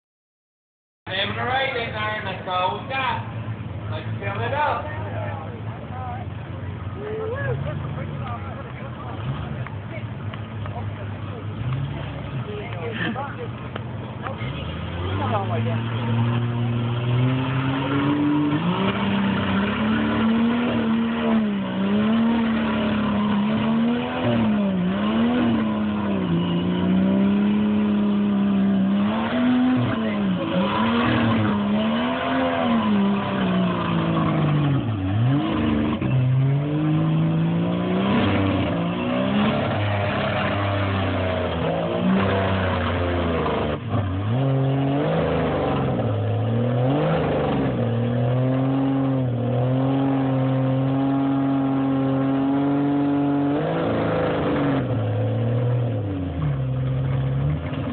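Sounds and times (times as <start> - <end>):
truck engine revving: 1.1 - 57.9.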